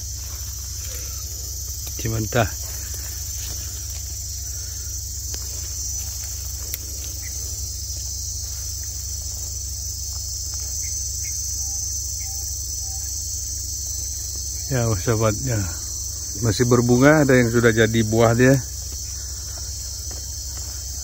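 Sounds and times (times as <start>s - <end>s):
high-pitched insect chorus: 0.0s - 21.0s
low steady hum: 0.0s - 21.0s
man's voice: 14.7s - 15.8s, 16.4s - 18.7s.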